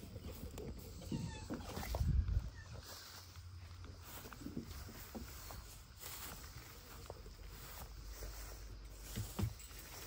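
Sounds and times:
fox whining squeals: 0.8 - 2.8.

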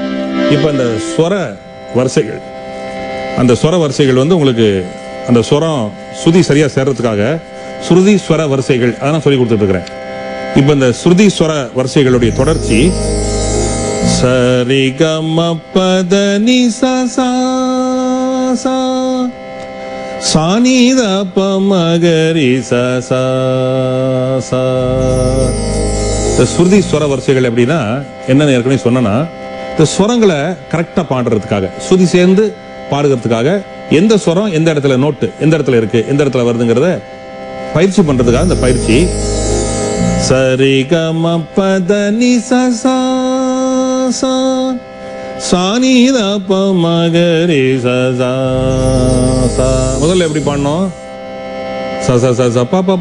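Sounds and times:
steady drone: 0.0 - 41.4, 45.0 - 52.1
low hum: 12.0 - 14.9, 24.5 - 27.4, 38.0 - 40.6, 48.3 - 51.1
man singing: 14.0 - 19.4, 20.3 - 25.6, 40.2 - 51.0.

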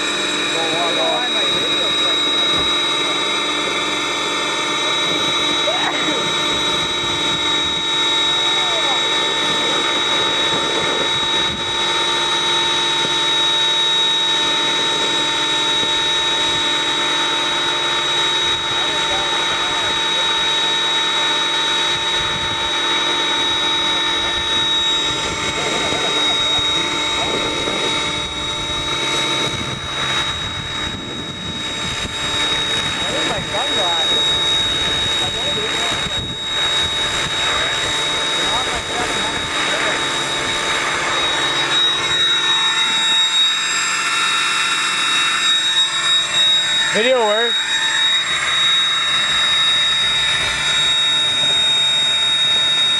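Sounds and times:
high whine of motor and gears: 0.0 - 52.9
rush of rotor blades: 0.0 - 52.9.

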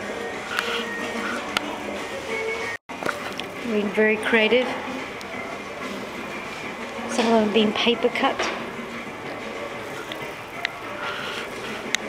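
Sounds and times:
shop room noise: 0.0 - 12.0.

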